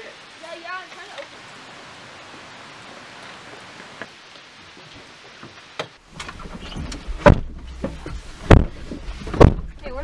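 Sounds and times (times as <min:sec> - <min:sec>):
car doors shutting: 0:05.8 - 0:09.7.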